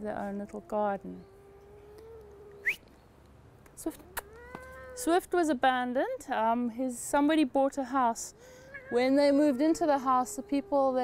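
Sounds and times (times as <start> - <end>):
cat meowing: 4.0 - 5.1, 8.6 - 11.0.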